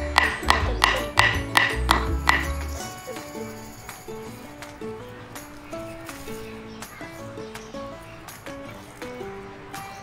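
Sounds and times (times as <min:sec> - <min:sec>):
wooden mallet knocking stake: 0:00.0 - 0:02.8
background music: 0:00.0 - 0:10.0.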